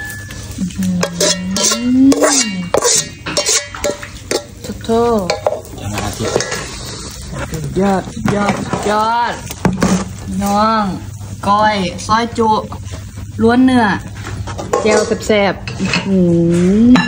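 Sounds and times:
spoon scraping metal pot: 0:01.0 - 0:05.5.

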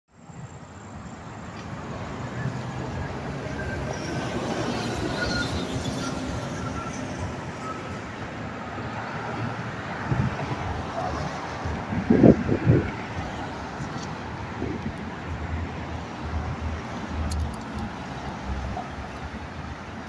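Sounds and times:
road traffic drone: 0:00.1 - 0:20.0.

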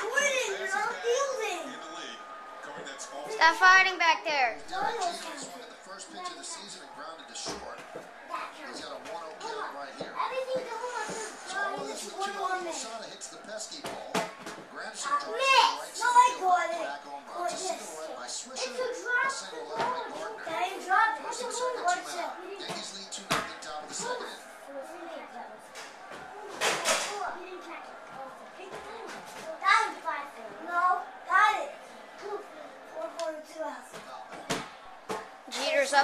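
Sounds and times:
children talking and shouting: 0:00.0 - 0:36.0
indistinct voices in a room: 0:00.0 - 0:36.0.

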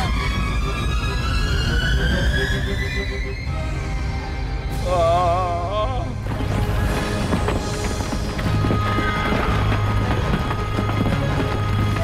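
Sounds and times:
dramatic cartoon music: 0:00.0 - 0:12.0.

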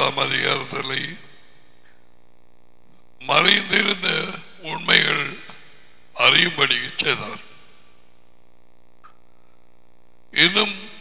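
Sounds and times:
man speaking: 0:00.0 - 0:01.3, 0:03.2 - 0:07.6, 0:10.4 - 0:11.0.

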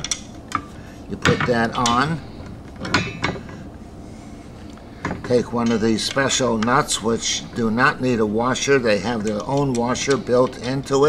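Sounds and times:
faint metal handling noise: 0:00.0 - 0:03.7, 0:09.0 - 0:11.0.

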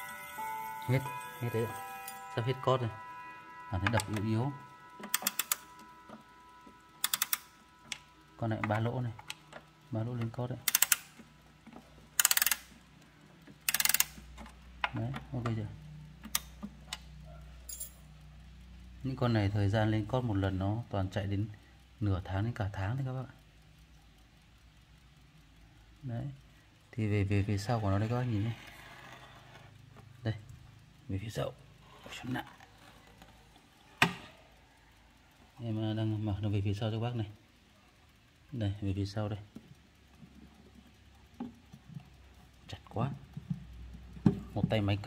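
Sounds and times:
clock winding ratchet clicks: 0:03.8 - 0:45.0.

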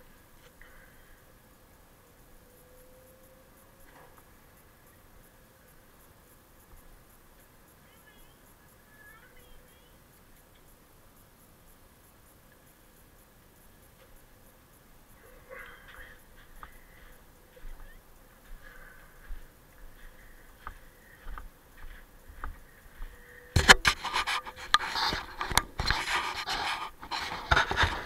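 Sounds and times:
soft breathing puffs: 0:15.2 - 0:28.0
rustling and scraping with clicks: 0:23.5 - 0:28.0.

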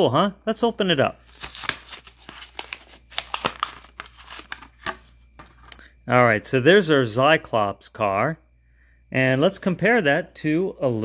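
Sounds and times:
cardboard tearing by hand: 0:01.2 - 0:04.6
paper ripping: 0:01.2 - 0:05.0
plastic crinkling: 0:01.2 - 0:05.8.

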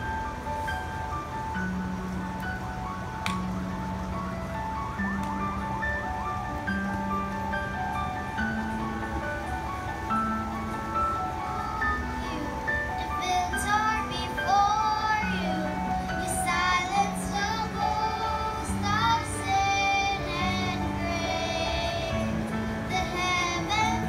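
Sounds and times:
children singing into microphones: 0:11.5 - 0:24.0.

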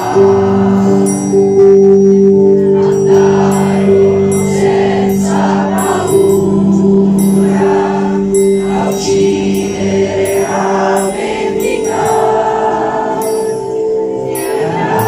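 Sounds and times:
choir singing: 0:00.0 - 0:01.8, 0:02.5 - 0:15.0.

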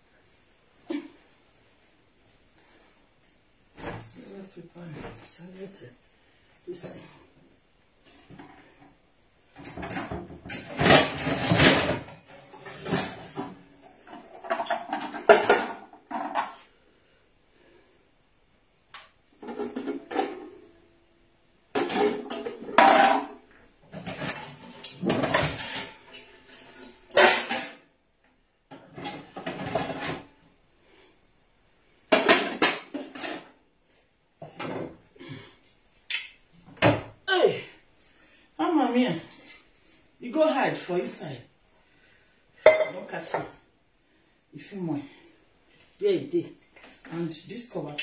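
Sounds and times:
metal pots and pans clattering: 0:09.5 - 0:16.7, 0:19.4 - 0:20.8, 0:21.7 - 0:27.9, 0:28.7 - 0:30.4, 0:32.1 - 0:33.6, 0:34.4 - 0:35.0, 0:42.6 - 0:43.6.

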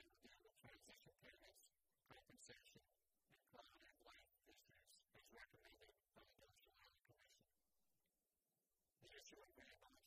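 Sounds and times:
faint man reading aloud: 0:00.0 - 0:07.6, 0:09.0 - 0:10.0.

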